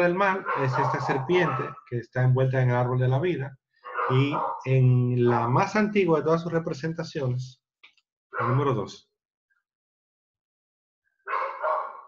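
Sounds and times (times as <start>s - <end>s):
dog barking: 0.4s - 1.8s, 3.9s - 4.7s, 8.4s - 8.8s, 11.3s - 12.0s.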